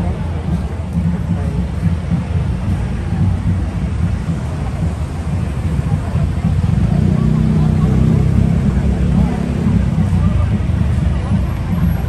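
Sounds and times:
crowd chatter: 0:00.0 - 0:12.0
vehicle engines idling: 0:00.0 - 0:12.0.

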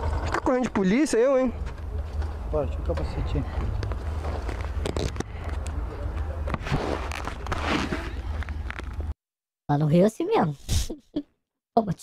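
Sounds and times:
rustling noise: 0:03.7 - 0:05.7, 0:06.4 - 0:09.1.

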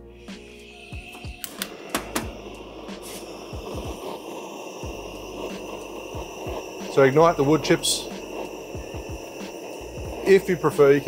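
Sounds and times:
torch flame hissing: 0:00.0 - 0:11.0
torch igniter click: 0:01.1 - 0:11.0.

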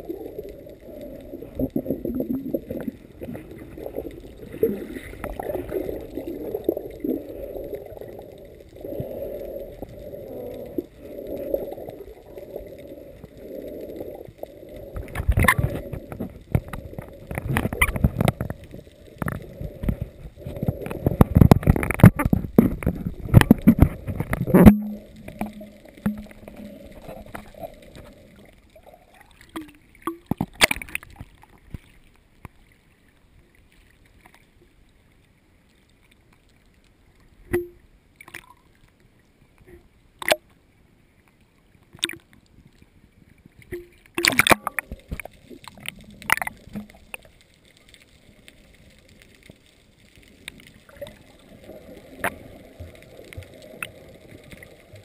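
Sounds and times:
water splashing: 0:00.0 - 0:32.9, 0:43.4 - 0:55.0
muffled underwater wash: 0:00.0 - 0:55.0
sharp underwater clicks: 0:13.2 - 0:28.2, 0:29.2 - 0:32.6, 0:37.4 - 0:38.8, 0:39.6 - 0:40.6, 0:41.9 - 0:42.8, 0:43.6 - 0:55.0.

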